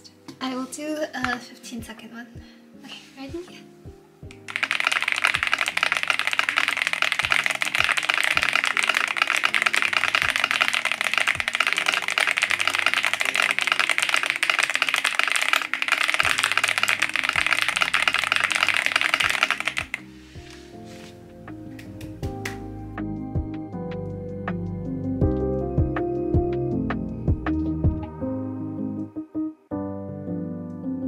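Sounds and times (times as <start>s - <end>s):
mechanical keyboard typing: 4.5s - 20.0s.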